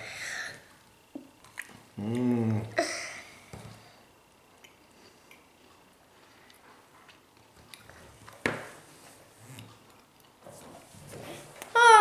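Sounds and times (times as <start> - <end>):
person chewing: 1.4 - 2.7, 4.6 - 8.4.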